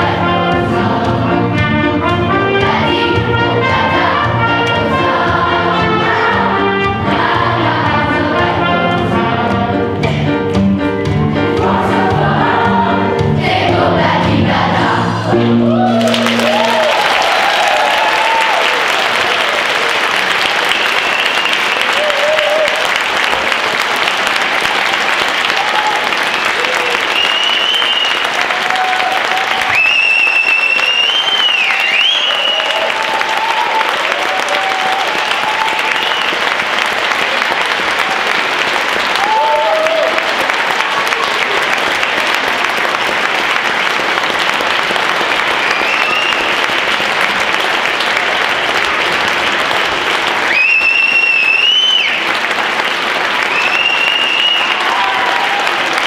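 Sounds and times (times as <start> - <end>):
voices and cheers: 15.5 - 20.0, 20.6 - 23.6, 25.4 - 36.5, 39.0 - 41.6, 53.5 - 56.0
audience applauding: 15.6 - 56.0
high whistle: 20.8 - 22.0, 27.1 - 28.3, 29.7 - 32.8, 35.8 - 36.4, 45.6 - 46.6, 50.5 - 52.2, 53.5 - 54.9.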